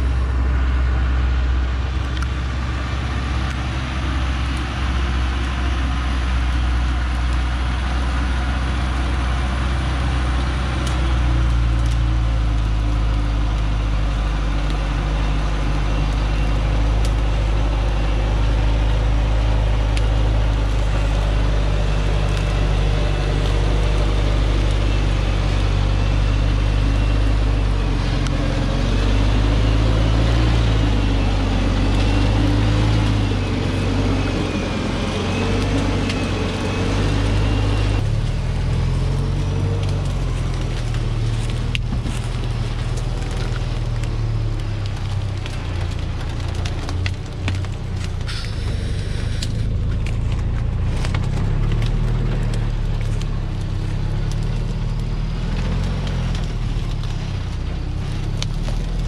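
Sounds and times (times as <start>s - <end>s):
diesel truck engine at low speed: 0.0s - 59.0s.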